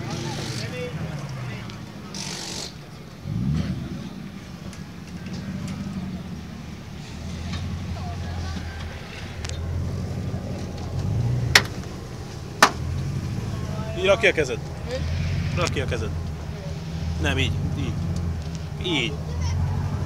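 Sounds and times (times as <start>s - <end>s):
car engine idling and revving: 0.0s - 20.0s
sharp knocks: 11.5s - 11.8s, 12.6s - 12.8s.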